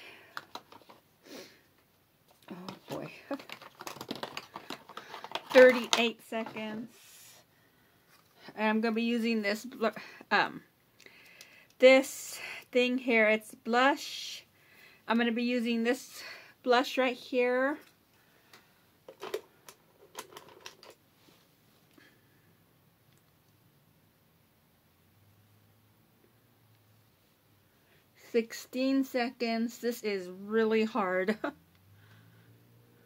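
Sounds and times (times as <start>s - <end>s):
packaging crinkling: 2.4s - 6.1s.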